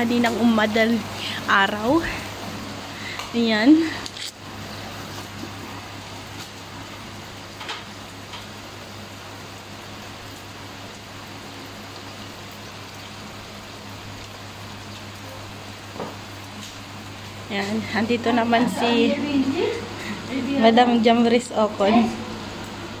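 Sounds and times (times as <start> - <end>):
steady rain falling: 0.0 - 23.0.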